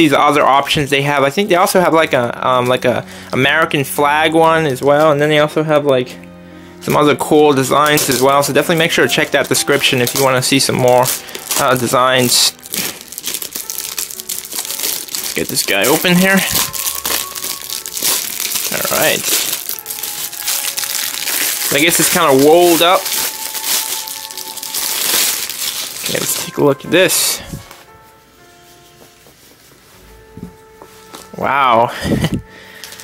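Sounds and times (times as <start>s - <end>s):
faint background music: 0.0s - 33.0s
plastic wrapper crinkling: 7.4s - 28.0s, 32.2s - 33.0s.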